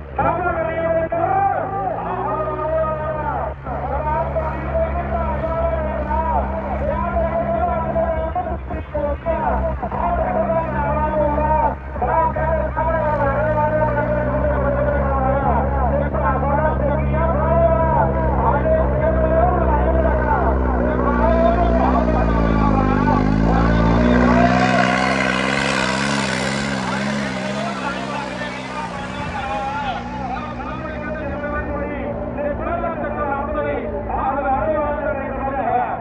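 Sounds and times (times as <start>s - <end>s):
tractor diesel engine under load: 0.0s - 36.0s
voice over loudspeakers: 0.0s - 36.0s.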